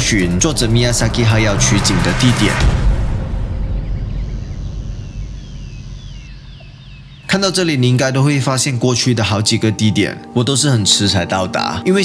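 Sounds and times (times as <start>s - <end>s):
low rumble: 0.0s - 8.8s
birds chirping: 3.4s - 11.8s.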